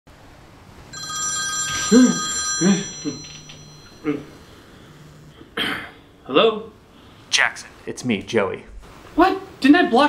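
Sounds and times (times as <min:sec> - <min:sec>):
telephone ringing: 0:00.9 - 0:05.2.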